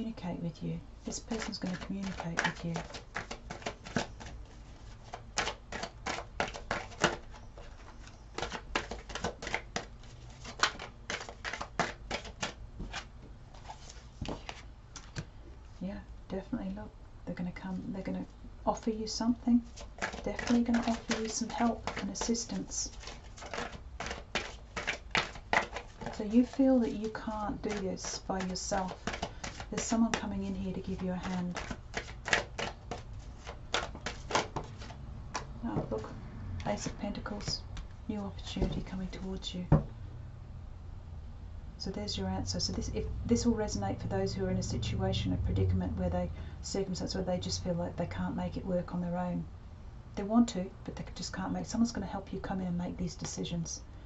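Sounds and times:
cards being shuffled: 1.1 - 15.3, 19.6 - 37.9.

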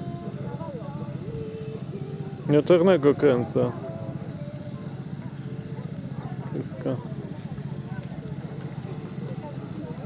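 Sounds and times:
engine running: 0.0 - 10.0.

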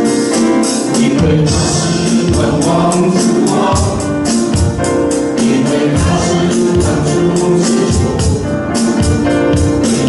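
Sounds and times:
high percussion beat: 0.0 - 10.0
keyboard accompaniment: 0.0 - 10.0
men and women singing: 0.6 - 9.1.

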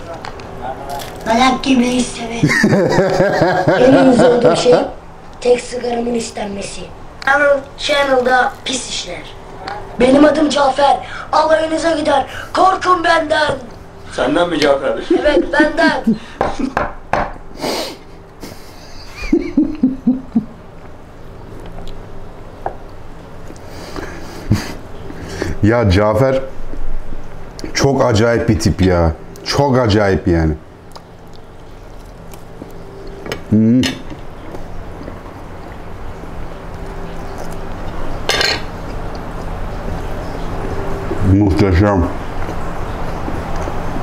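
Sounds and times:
low steady hum: 0.0 - 44.0
man's stifled laughter: 2.5 - 4.9, 18.4 - 20.6, 24.2 - 24.9
close chewing: 36.7 - 38.1, 42.3 - 44.0.

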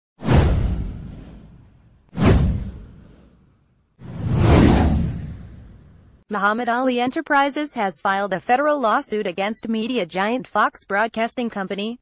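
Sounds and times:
deep whoosh sound effects: 0.2 - 6.2.

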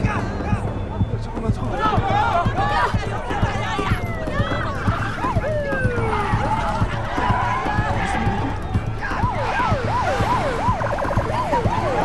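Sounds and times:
film music with pulsing beat: 0.0 - 12.0
emergency siren yelping: 3.4 - 12.0.

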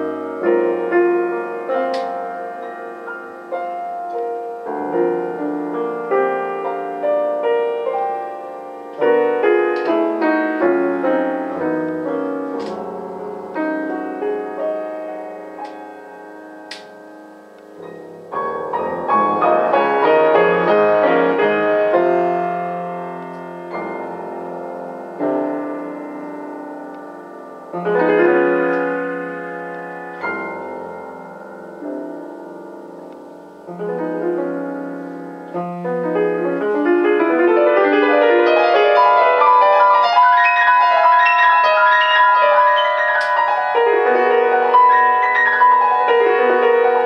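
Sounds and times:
solo piano playing: 0.0 - 47.0.

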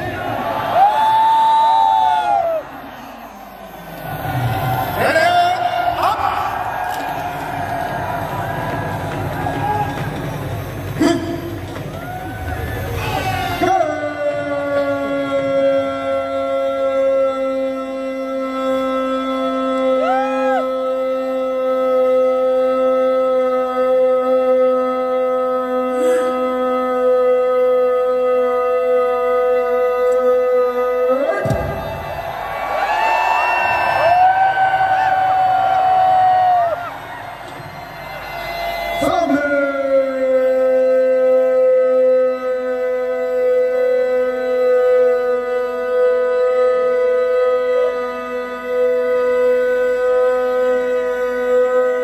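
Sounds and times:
crowd voices: 0.0 - 23.0, 28.1 - 46.2.

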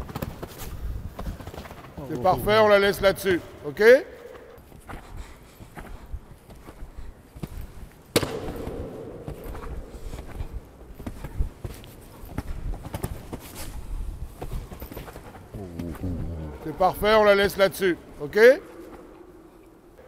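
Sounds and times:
horse hoofbeats on sand: 4.6 - 18.0
sharp knock: 8.2 - 10.6.

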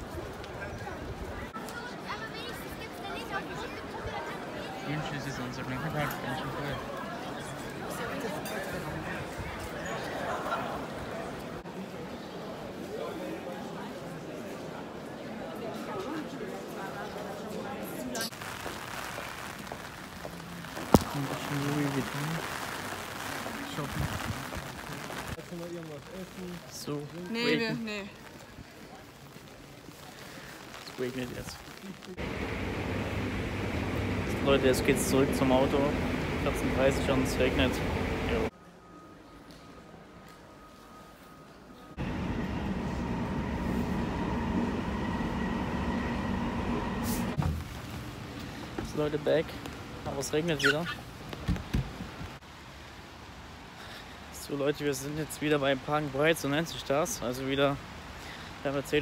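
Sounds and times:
outdoor background noise: 0.0 - 59.0
rain falling on pavement: 18.3 - 38.5, 47.5 - 59.0
underground train rumble with whine: 32.2 - 38.5, 41.2 - 48.4.

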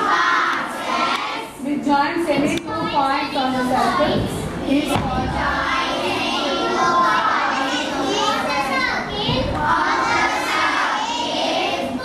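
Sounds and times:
children calling out together: 0.0 - 1.6, 2.6 - 12.0.

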